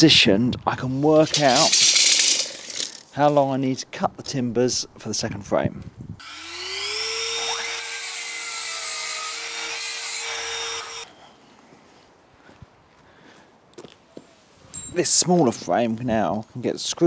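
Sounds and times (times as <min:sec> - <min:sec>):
electric mitre saw cutting timber: 0:06.2 - 0:11.1.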